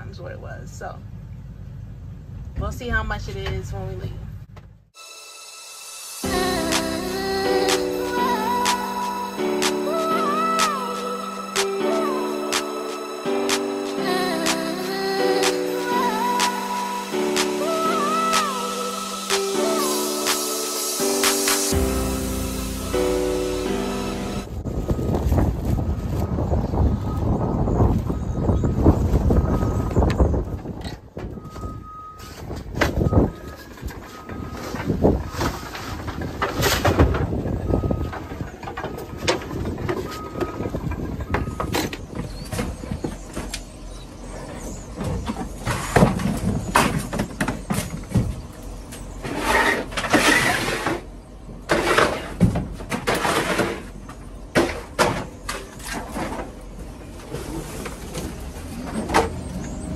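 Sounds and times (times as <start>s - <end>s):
faint beep: 24.3s - 27.2s, 31.4s - 32.4s, 39.9s - 41.9s
furniture dragged across metal floor: 49.2s - 51.1s.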